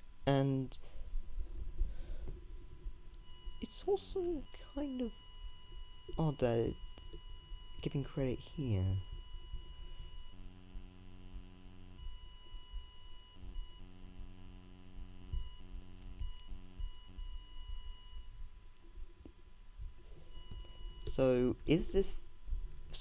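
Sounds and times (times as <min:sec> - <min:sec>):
faint high-pitched whine: 0:00.0 - 0:23.0
faint low buzzing hum: 0:00.0 - 0:23.0.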